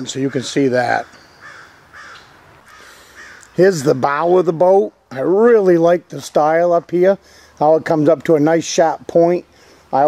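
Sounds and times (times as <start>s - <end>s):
faint bird calls: 0.0s - 3.6s.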